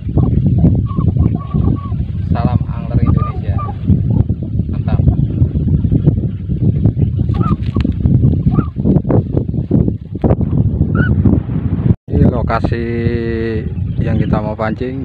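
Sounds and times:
wind rumbling on microphone: 0.0s - 15.0s
honking fowl-like calls: 3.0s - 3.8s
man's voice: 12.1s - 15.0s.

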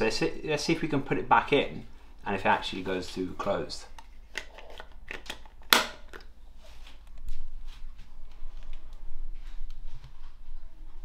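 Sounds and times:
sharp plastic snap: 5.1s - 6.3s.

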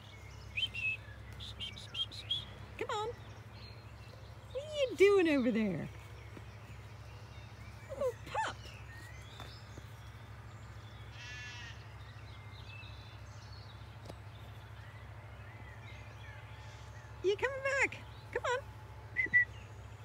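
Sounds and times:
low steady hum: 0.0s - 20.0s
sheep bleating: 11.1s - 11.9s.

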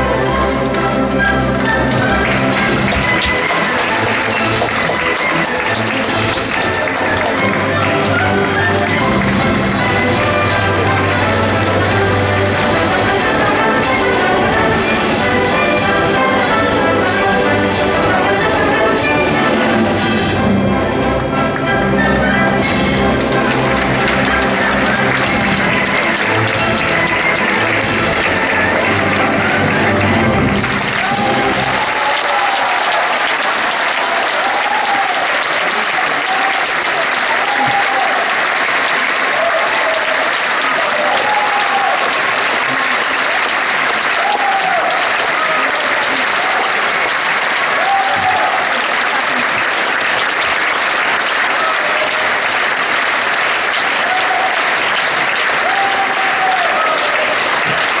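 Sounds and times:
audience applause: 0.0s - 58.0s
orchestra playing: 0.0s - 58.0s
audience voices calling out: 22.0s - 58.0s.

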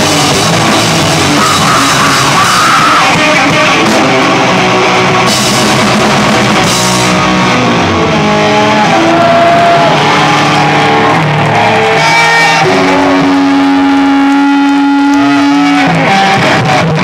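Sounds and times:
rock band playing: 0.0s - 17.0s
held electric guitar note: 11.8s - 17.0s.

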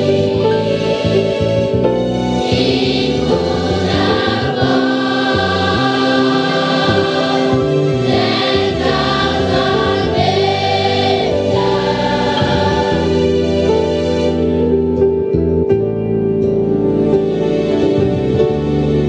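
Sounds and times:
children's choir singing: 0.0s - 13.9s.

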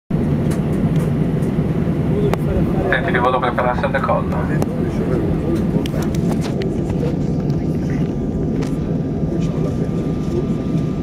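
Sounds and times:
jet engines rumbling in cabin: 0.1s - 11.0s.

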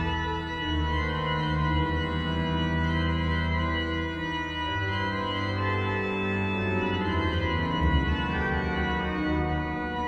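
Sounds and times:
pipe organ music: 0.0s - 10.0s.

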